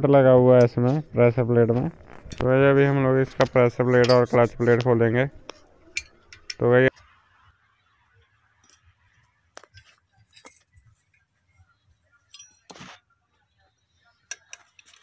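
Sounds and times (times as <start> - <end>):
metallic clinks of hand tools: 12.3 - 12.8.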